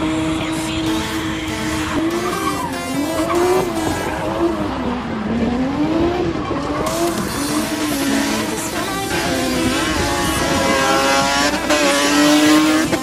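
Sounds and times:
car engine revving hard: 0.0 - 13.0.

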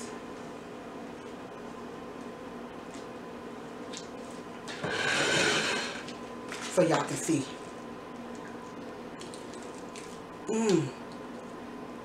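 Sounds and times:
plate scraping on countertop: 4.7 - 6.1.

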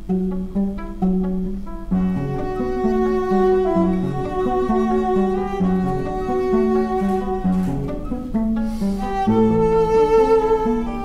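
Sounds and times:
bowed viola: 0.0 - 11.0
classical guitar: 0.0 - 11.0.

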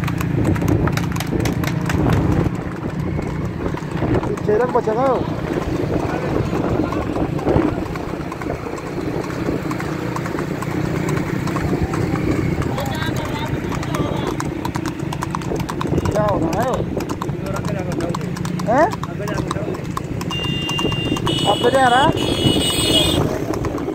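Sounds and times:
horse hooves clip-clopping on asphalt: 0.0 - 23.9
road and wind noise: 0.0 - 23.9.

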